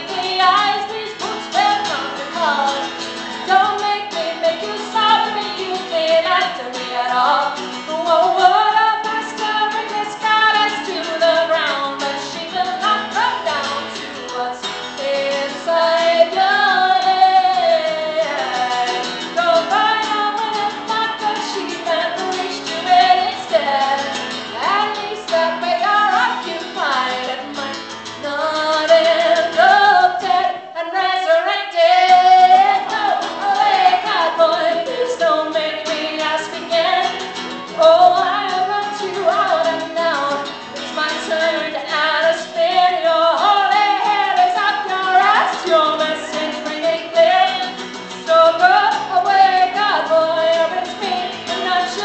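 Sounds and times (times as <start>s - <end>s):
acoustic guitar strumming: 0.0s - 52.0s
girl singing backup: 0.0s - 52.0s
woman singing folk song: 0.0s - 52.0s.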